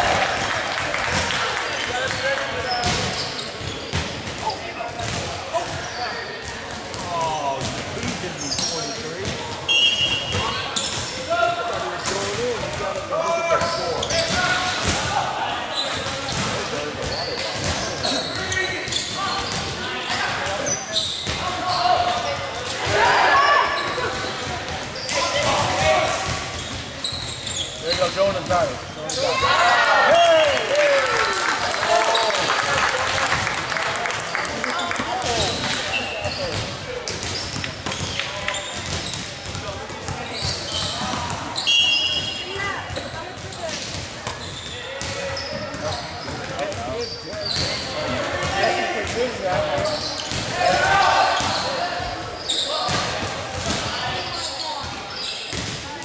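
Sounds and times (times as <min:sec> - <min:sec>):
murmur of voices and calls: 0:00.0 - 0:56.0
volleyball hits and bounces: 0:02.8 - 0:05.8, 0:10.2 - 0:15.2, 0:16.0 - 0:20.6, 0:34.5 - 0:41.5, 0:42.2 - 0:52.2, 0:52.8 - 0:54.2, 0:54.8 - 0:56.0.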